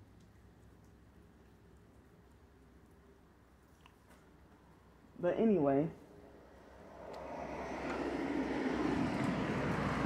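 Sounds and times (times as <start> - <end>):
vehicle approaching: 6.1 - 10.0.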